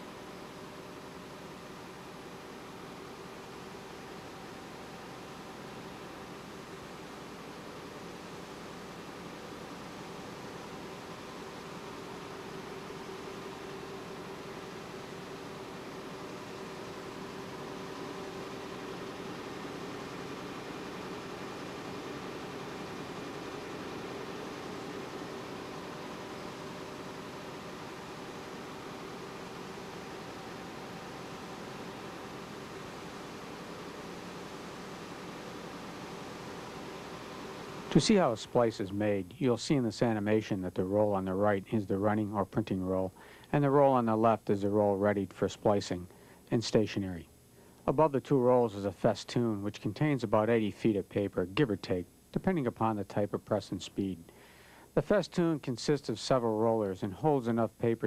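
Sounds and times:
printing press running: 0.0s - 38.8s
faint steady hum: 0.0s - 58.0s.

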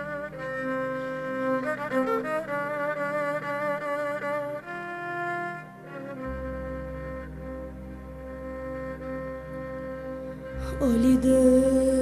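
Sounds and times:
bowed fiddle long note: 0.0s - 12.0s.

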